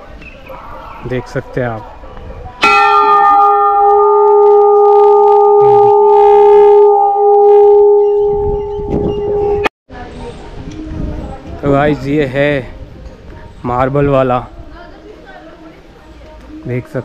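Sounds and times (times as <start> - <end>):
large metal bell ringing: 2.6 - 9.7.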